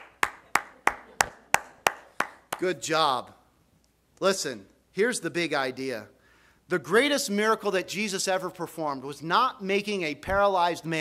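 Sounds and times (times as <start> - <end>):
person clapping hands: 0.0 - 2.7.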